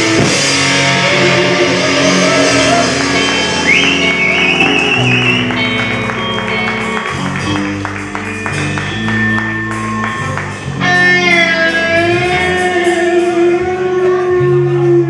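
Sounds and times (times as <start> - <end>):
live metal band playing: 0.0 - 15.0
wavering high guitar note: 0.0 - 15.0.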